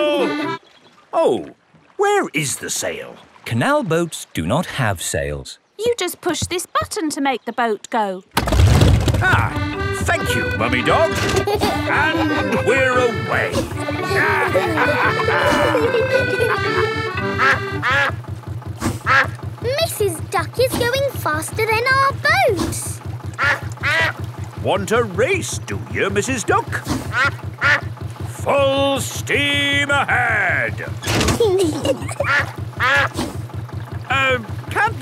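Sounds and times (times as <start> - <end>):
background music: 0.0 - 0.6, 9.3 - 18.1
cartoon duck quacking: 0.0 - 0.6, 9.4 - 18.2, 18.9 - 19.4, 23.4 - 24.8, 27.1 - 27.9, 32.1 - 33.2
boat motor chugging: 0.0 - 0.7, 8.4 - 35.0.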